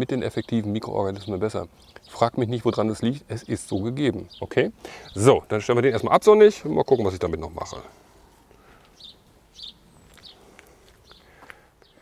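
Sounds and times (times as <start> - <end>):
faint bird chirps: 8.6 - 12.0.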